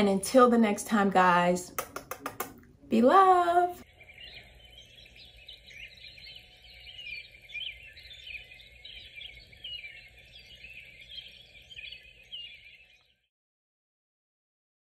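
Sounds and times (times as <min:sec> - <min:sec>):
small birds chirping: 0:00.3 - 0:13.3.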